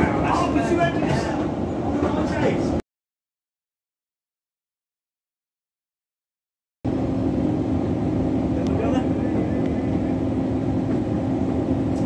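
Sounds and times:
vehicle cabin rumble and hum: 6.9s - 12.0s.

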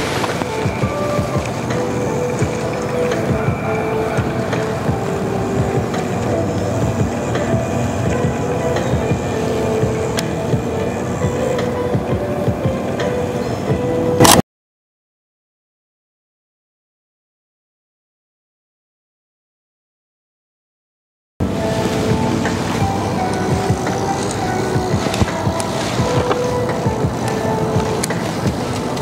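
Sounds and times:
wind rumbling on microphone: 0.0s - 14.3s, 21.4s - 29.0s
music: 0.0s - 14.4s, 21.4s - 29.0s.

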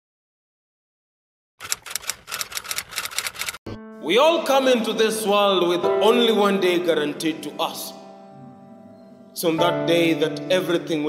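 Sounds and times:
typewriter keystroke clicks: 1.6s - 3.6s.

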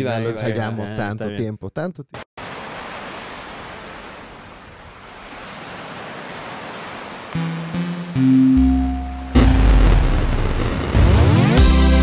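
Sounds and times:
ocean waves rushing: 2.4s - 9.8s
music with loud held notes: 7.4s - 12.0s.

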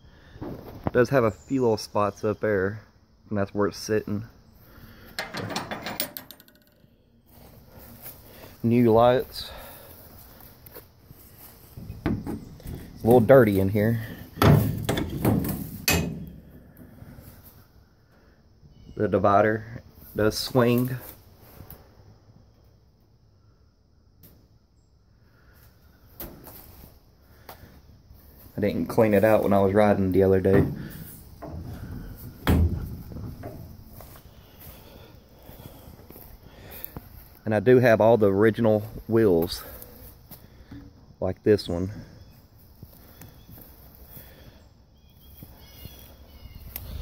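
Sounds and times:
metallic clanks of trailer door: 5.2s - 6.8s, 14.0s - 16.5s, 30.5s - 33.7s
faint scuffing and small knocks: 9.6s - 17.6s, 26.1s - 37.4s.

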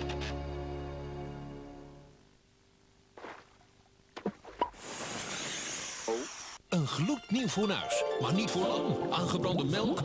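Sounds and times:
hiss sound effect: 4.7s - 6.6s.

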